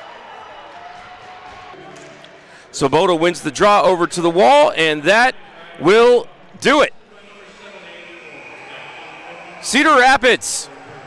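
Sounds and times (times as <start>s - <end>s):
ice hockey arena background: 0.0s - 11.0s.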